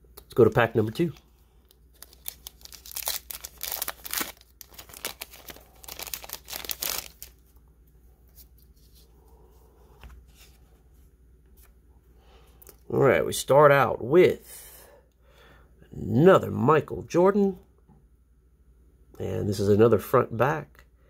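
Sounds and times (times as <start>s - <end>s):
soft handling of cards: 0.0s - 12.9s
plastic wrapper tearing and crinkling: 0.4s - 7.4s.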